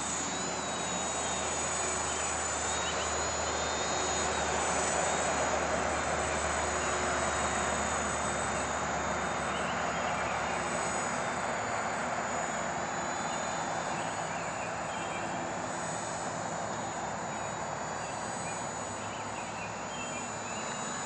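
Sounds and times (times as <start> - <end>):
quadcopter propellers buzzing: 0.0 - 21.0.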